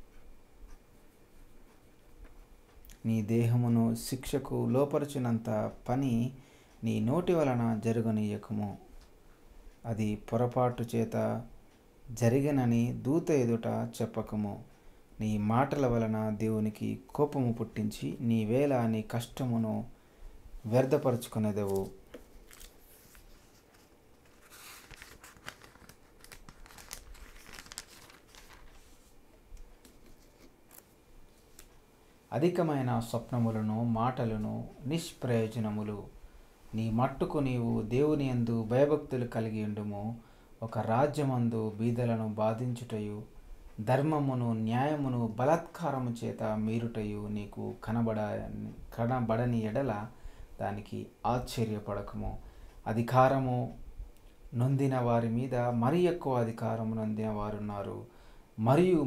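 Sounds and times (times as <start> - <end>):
paper rustling and crinkling: 21.6 - 29.2, 29.8 - 31.8.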